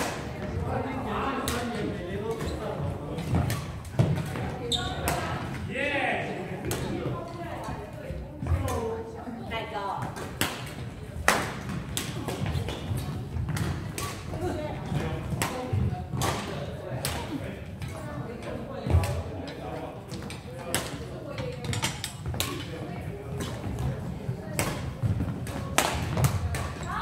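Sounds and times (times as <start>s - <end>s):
players' voices: 0.0s - 27.0s
rackets hitting shuttlecock: 1.4s - 2.6s, 3.2s - 5.5s, 10.0s - 18.0s, 20.1s - 26.9s.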